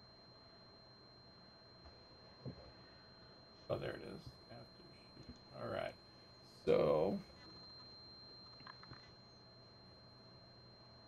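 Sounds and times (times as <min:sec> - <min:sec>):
faint high whine: 0:00.0 - 0:11.0.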